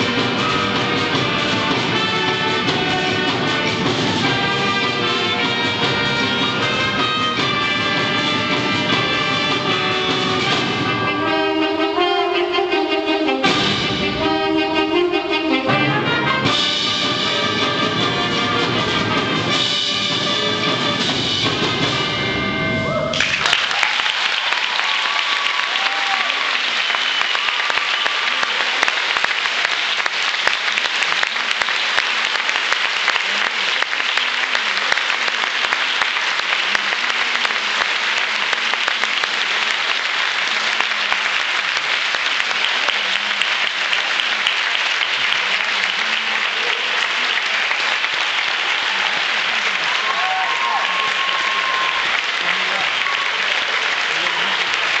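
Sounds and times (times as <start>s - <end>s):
cheers and whistles: 22.8s - 28.7s, 49.9s - 53.6s
audience applauding: 23.0s - 55.0s.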